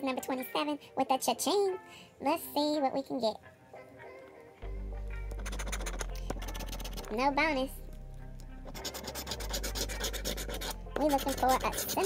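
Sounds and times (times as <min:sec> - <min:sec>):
coin scraping scratch card: 0:05.4 - 0:07.1, 0:08.7 - 0:12.0.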